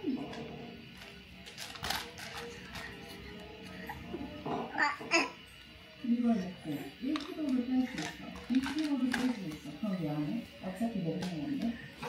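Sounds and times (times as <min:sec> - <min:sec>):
soft background music: 0:00.0 - 0:12.0
baby cooing: 0:02.4 - 0:05.4.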